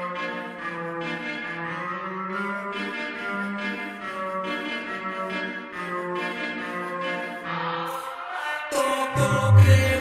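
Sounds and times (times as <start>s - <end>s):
hip-hop music with echo effects: 0.0s - 10.0s.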